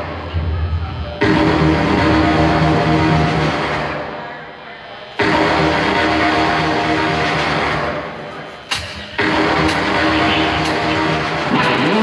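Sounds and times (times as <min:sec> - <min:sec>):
industrial rock band playing: 0:08.7 - 0:12.0.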